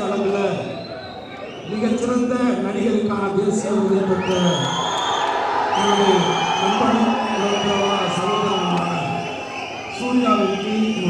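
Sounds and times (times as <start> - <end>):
long shrill whistles: 0.6 - 1.8, 4.2 - 11.0
large audience cheering: 3.8 - 11.0.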